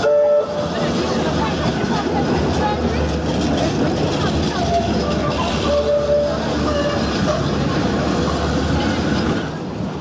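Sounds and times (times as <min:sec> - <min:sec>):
passers-by talking: 0:00.0 - 0:10.0.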